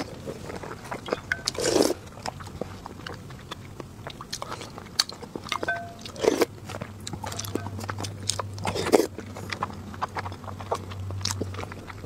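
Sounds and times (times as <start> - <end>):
low steady hum: 0.0 - 12.0
wet chewing and mouth clicks: 0.0 - 12.0.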